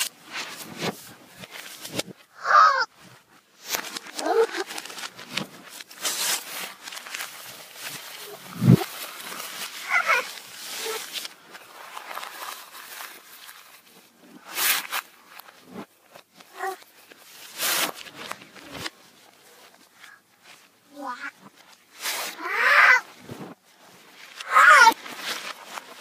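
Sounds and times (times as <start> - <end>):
paper crinkling: 0.0 - 2.2, 2.9 - 26.0
girl's voice played backwards: 20.9 - 21.5.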